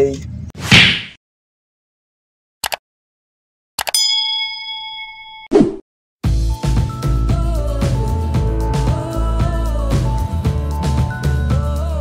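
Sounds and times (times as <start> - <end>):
bell ding ringing: 3.9 - 5.5.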